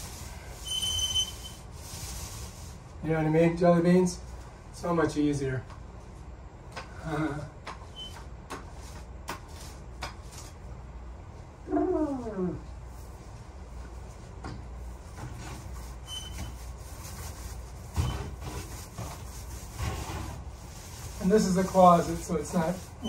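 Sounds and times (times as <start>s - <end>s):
paint roller rolling on a wall: 0.0s - 2.9s, 13.1s - 23.0s.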